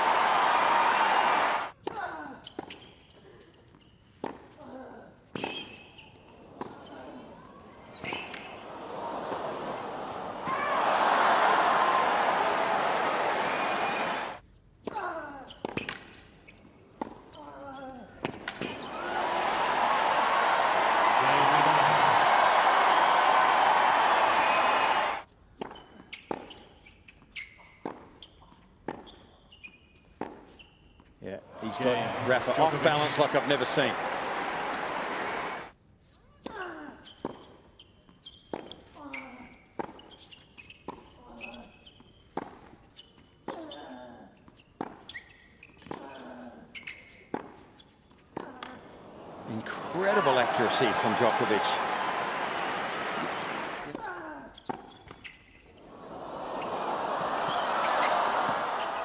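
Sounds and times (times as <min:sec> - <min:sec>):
crowd cheering and applauding: 0:00.0 - 0:01.7, 0:08.6 - 0:14.4, 0:18.8 - 0:25.2, 0:31.6 - 0:35.7, 0:49.1 - 0:53.9, 0:55.8 - 0:59.0
tennis balls bouncing on court: 0:18.2 - 0:26.6, 0:32.0 - 0:35.7, 0:49.6 - 0:54.0, 0:57.4 - 0:59.0.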